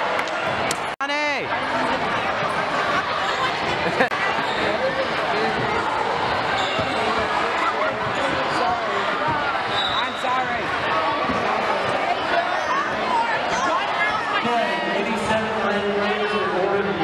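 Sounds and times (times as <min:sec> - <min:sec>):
voices chattering: 0:00.5 - 0:17.0.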